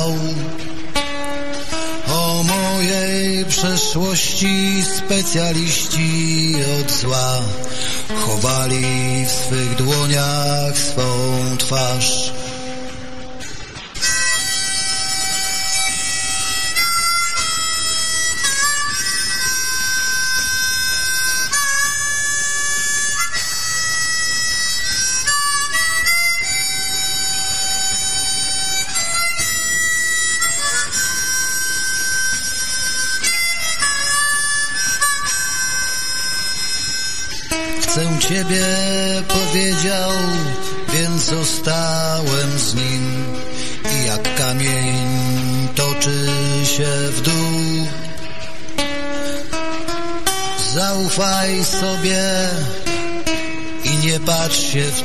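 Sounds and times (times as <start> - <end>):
blues band playing: 0.0 - 54.9
harmonica solo: 0.0 - 55.0.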